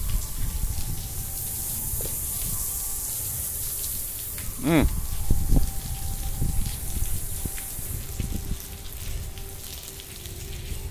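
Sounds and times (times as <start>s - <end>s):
water spraying onto glass panels: 0.0s - 10.9s.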